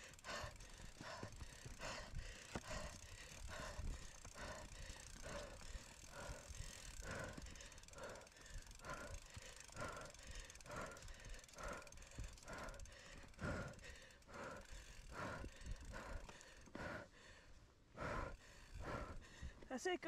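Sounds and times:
bike rolling over rough ground: 0.0s - 17.0s
rider breathing hard: 0.0s - 19.7s.

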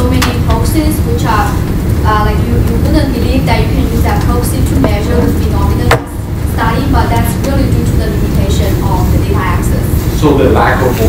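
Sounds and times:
woman speaking: 0.0s - 10.0s
low room rumble: 0.0s - 11.0s.

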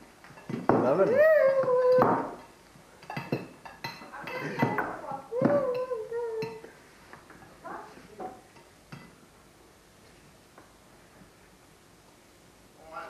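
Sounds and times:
plate and cutlery clinking: 3.0s - 5.0s
high-pitched vocal sound: 4.4s - 6.7s.

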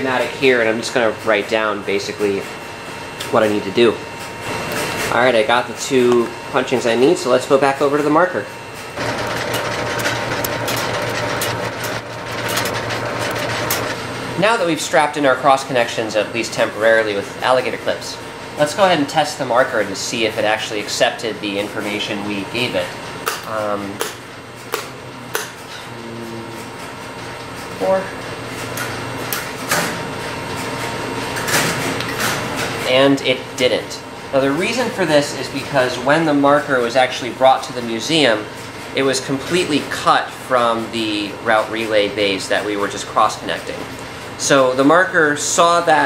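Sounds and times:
low mains hum: 0.0s - 46.0s
switching equipment humming and whirring: 0.0s - 46.0s.

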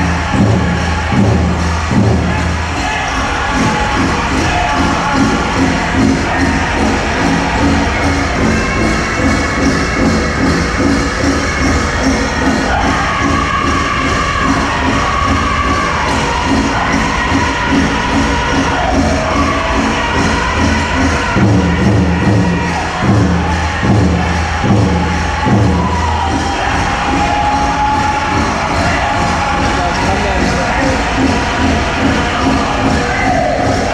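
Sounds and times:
big drum beat: 0.0s - 33.9s
group singing in high voices: 0.0s - 33.9s.

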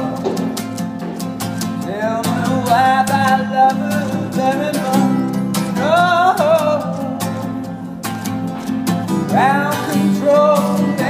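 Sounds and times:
man singing: 0.0s - 0.6s, 1.6s - 8.1s, 9.1s - 11.0s
acoustic guitar strumming: 0.0s - 11.0s.

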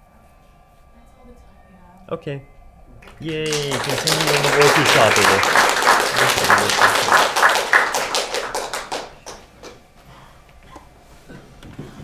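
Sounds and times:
audience cheer: 3.0s - 9.4s
audience applauding: 3.0s - 9.8s.

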